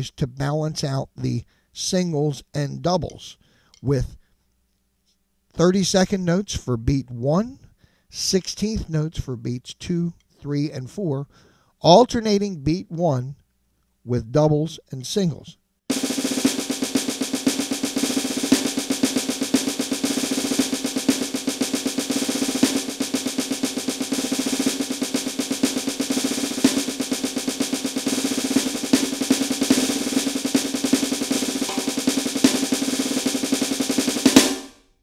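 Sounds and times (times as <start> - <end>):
sticks on electronic drum pad: 15.9 - 34.5.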